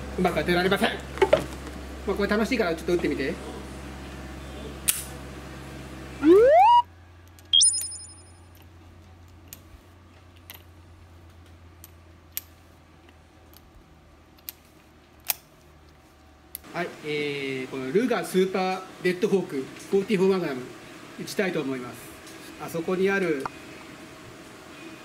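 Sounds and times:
rising swoop sound effect: 0:06.2 - 0:06.8
high bright chime: 0:07.6 - 0:08.4.

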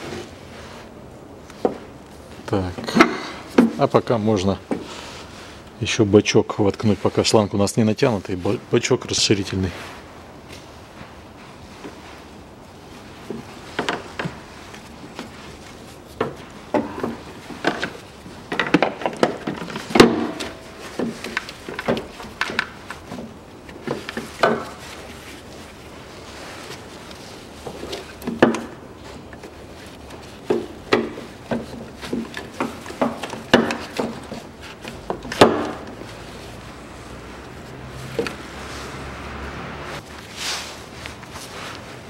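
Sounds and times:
hard plastic knocks and clunks: 0:30.5 - 0:36.0.

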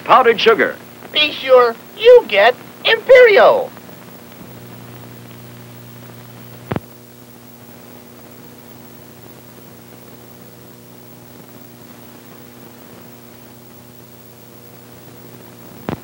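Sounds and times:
background hiss: 0:00.0 - 0:16.0
electrical mains hum: 0:00.0 - 0:16.0.

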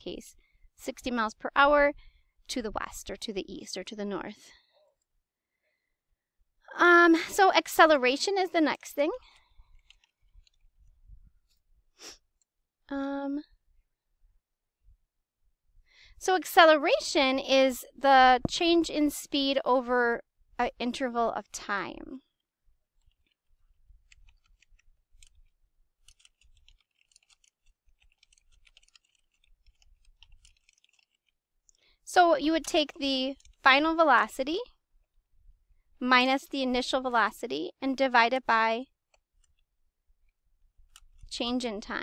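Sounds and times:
short breath: 0:15.9 - 0:16.2
keyboard typing: 0:24.0 - 0:31.4.

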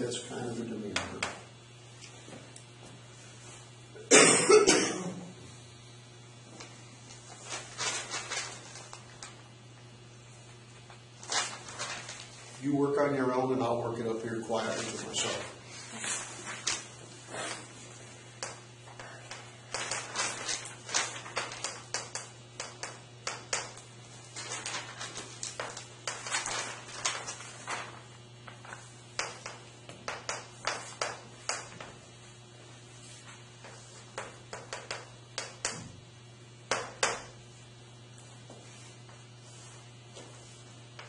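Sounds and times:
steady low hum: 0:00.0 - 0:41.0
chalk tapping on blackboard: 0:21.4 - 0:23.8, 0:29.2 - 0:31.9, 0:33.1 - 0:35.9, 0:36.7 - 0:37.3.

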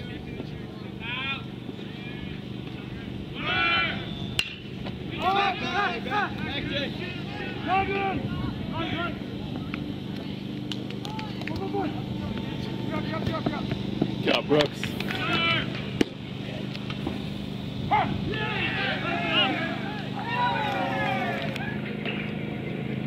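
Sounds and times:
ballplayers shouting and yelling: 0:00.0 - 0:23.0
metal bat hitting ball: 0:04.4 - 0:04.6.

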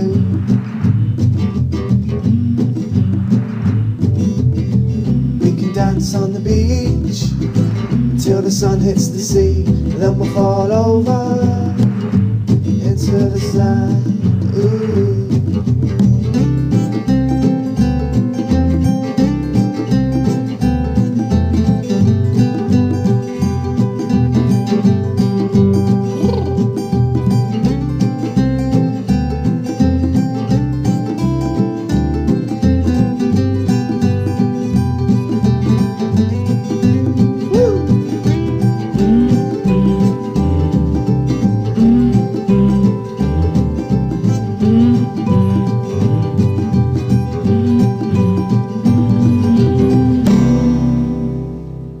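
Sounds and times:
acoustic guitar strumming: 0:00.0 - 0:52.0.

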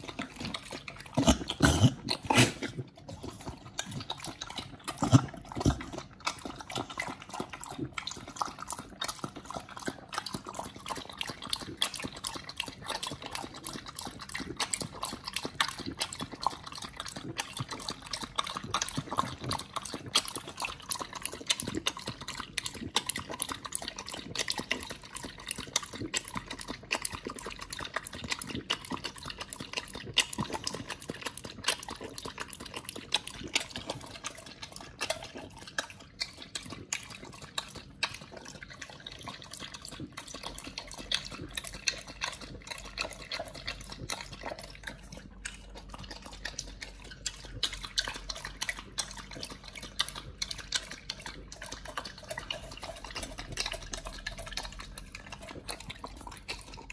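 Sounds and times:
dog lapping wet food: 0:00.0 - 0:56.9.

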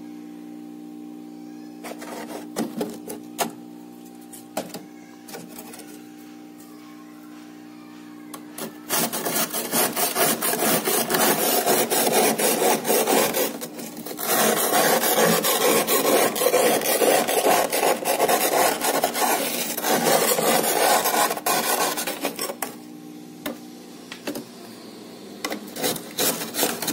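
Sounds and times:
metal utensil scraping frost: 0:08.6 - 0:22.6, 0:25.7 - 0:26.9.

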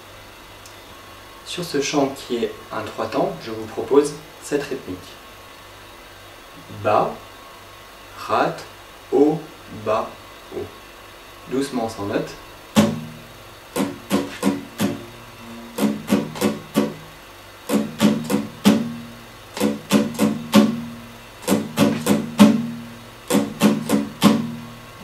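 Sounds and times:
acoustic guitar strummed slowly: 0:12.7 - 0:25.0.

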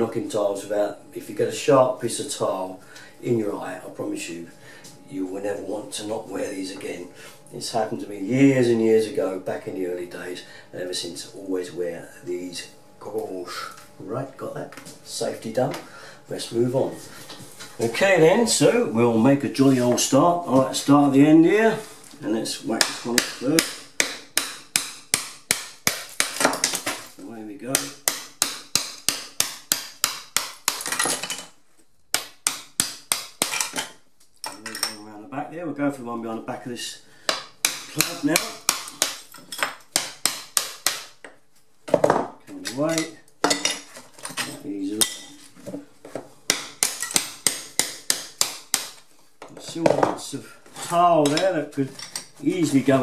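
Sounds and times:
hammer striking chisel: 0:22.7 - 0:27.0, 0:27.7 - 0:31.3, 0:32.1 - 0:34.0, 0:37.3 - 0:41.4, 0:46.5 - 0:49.0.

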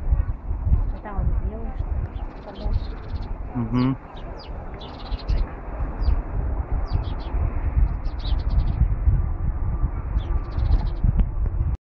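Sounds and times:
steady low rumble: 0:00.0 - 0:11.8
small birds chirping: 0:00.7 - 0:06.2, 0:06.8 - 0:08.9, 0:10.1 - 0:11.1.

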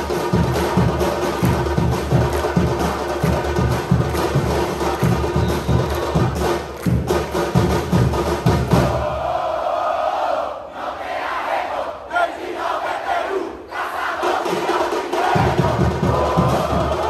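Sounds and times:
drums: 0:00.0 - 0:09.4, 0:14.1 - 0:17.0
crowd chanting and shouting: 0:00.0 - 0:17.0.

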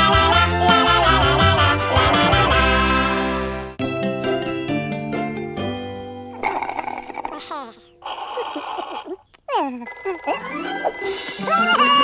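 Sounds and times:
cartoon telephone ringing: 0:09.8 - 0:11.9.

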